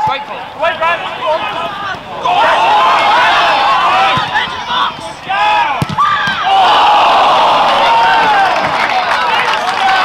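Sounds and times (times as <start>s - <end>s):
crowd cheering: 0.0s - 10.0s
football crowd shouting: 0.0s - 10.0s.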